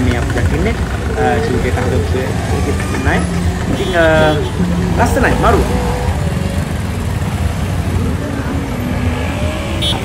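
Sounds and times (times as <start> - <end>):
road noise: 0.0 - 10.0
vehicle engine rumble: 0.0 - 10.0.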